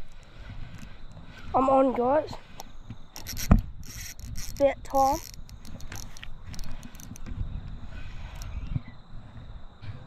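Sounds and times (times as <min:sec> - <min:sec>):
fishing reel clicks: 0:02.6 - 0:07.3, 0:08.2 - 0:08.6.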